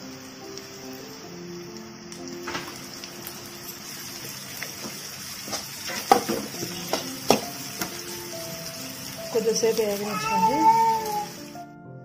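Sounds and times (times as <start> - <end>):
food sizzling in a frying pan: 0.0 - 11.7
background music: 0.0 - 12.0
spoon tapping on pan: 4.8 - 8.1.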